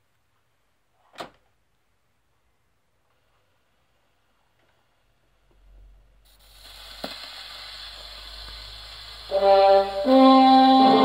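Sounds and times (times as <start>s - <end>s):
record surface noise hiss: 0.0s - 11.0s.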